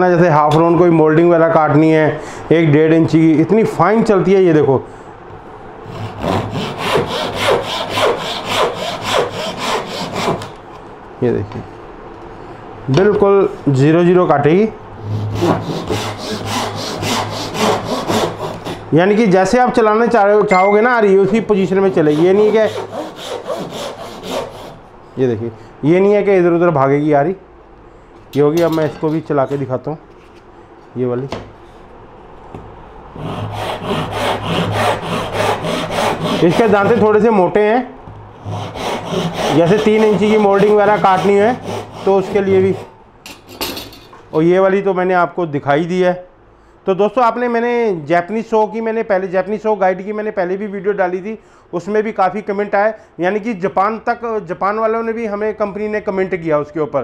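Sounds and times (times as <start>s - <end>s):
handsaw cutting wood: 5.9s - 10.6s, 15.0s - 18.9s, 21.8s - 24.8s, 33.2s - 37.2s, 38.4s - 43.0s.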